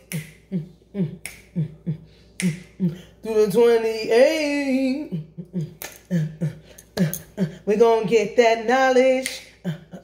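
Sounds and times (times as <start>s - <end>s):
woman beatboxing: 0.0s - 3.6s.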